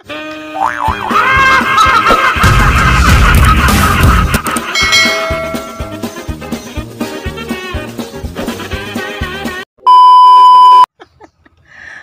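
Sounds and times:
intro jingle music: 4.8s - 6.5s.

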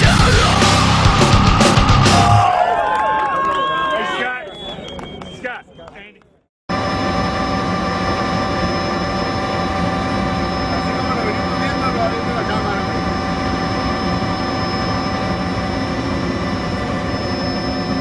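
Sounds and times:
helicopter turbine whine: 0.0s - 2.6s, 6.7s - 18.0s
engine and rotor drone: 6.7s - 18.0s.

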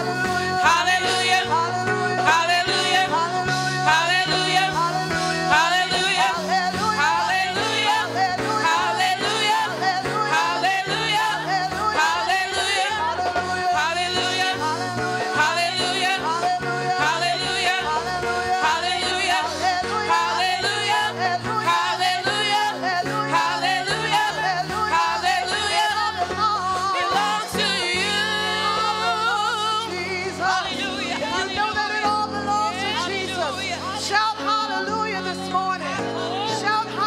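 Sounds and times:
instrumental accompaniment: 0.0s - 37.0s
women singing worship song: 0.0s - 37.0s.

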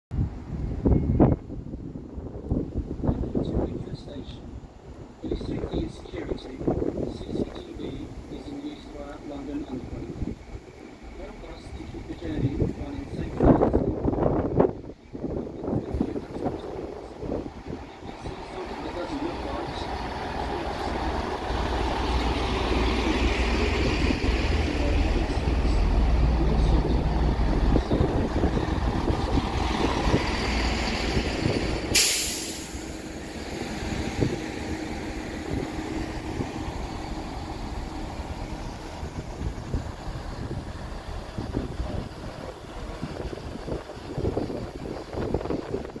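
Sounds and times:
diesel train engines rumbling: 0.2s - 46.0s
train wheels rumbling: 0.2s - 46.0s
air brake hiss: 31.9s - 33.0s.

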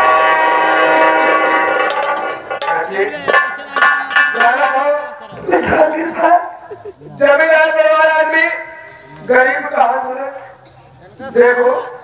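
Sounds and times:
harmonium chord: 0.0s - 2.8s
percussion ticks: 0.0s - 5.2s.

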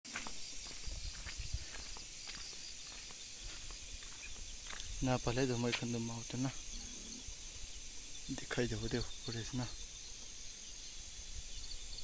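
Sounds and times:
steady high hiss: 0.1s - 12.0s.

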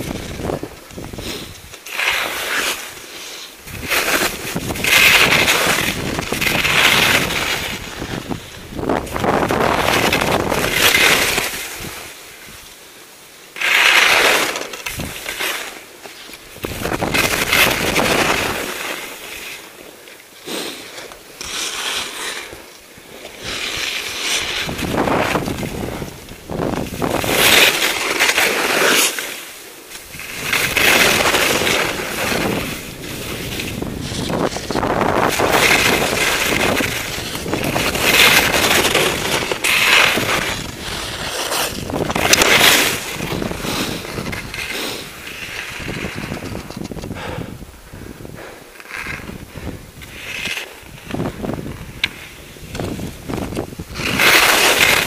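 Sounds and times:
wind noise on microphone: 0.0s - 1.8s, 3.6s - 12.7s, 14.9s - 15.3s, 16.5s - 18.9s, 23.4s - 28.3s, 30.1s - 55.0s
skis scraping across snow: 0.0s - 55.0s.

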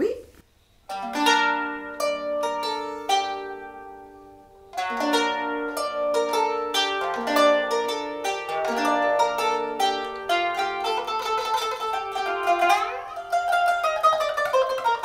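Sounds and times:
plucked zither notes: 0.9s - 15.0s.

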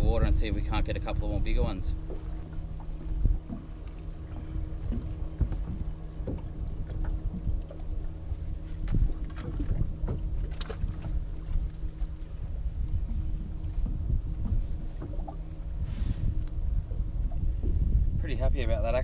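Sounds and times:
steady low hum: 0.0s - 19.0s
wind rumbling on microphone: 0.0s - 19.0s.

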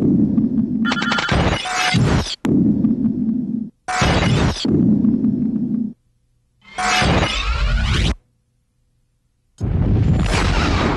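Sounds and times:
low rumbling noise: 0.0s - 0.9s, 2.4s - 3.9s, 4.6s - 6.0s.

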